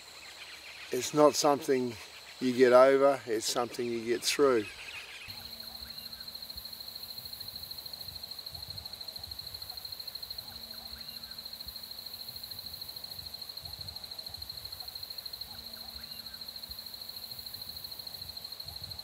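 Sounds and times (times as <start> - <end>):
distant bird calls: 0.0 - 12.4, 13.6 - 16.6
insect trilling: 0.0 - 19.0.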